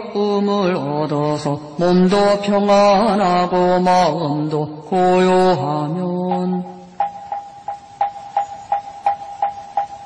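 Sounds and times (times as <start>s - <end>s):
sutra chanting: 0.0s - 7.0s.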